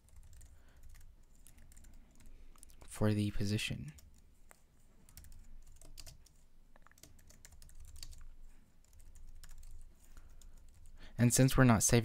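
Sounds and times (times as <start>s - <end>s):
typing on computer keyboard: 0.0s - 2.7s, 5.1s - 11.0s.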